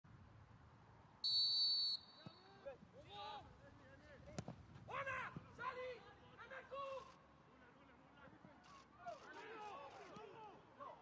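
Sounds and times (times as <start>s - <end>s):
referee's whistle blast: 1.2s - 2.4s.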